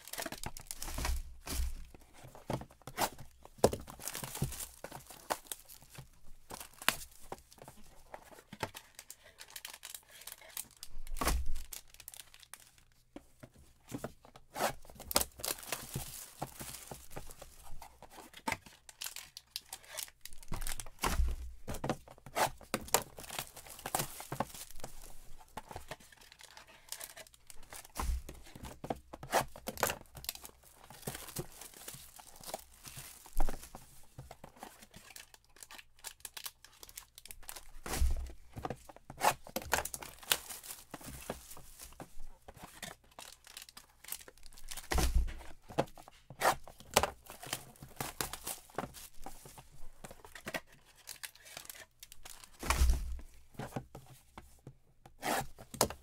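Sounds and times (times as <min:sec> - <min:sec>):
cardboard tearing: 0:00.0 - 0:05.9, 0:22.2 - 0:25.8, 0:38.9 - 0:42.0, 0:55.2 - 0:56.0
packs crinkling and rustling: 0:00.0 - 0:54.4
boxes thumping down: 0:44.7 - 0:45.6, 0:52.6 - 0:53.3.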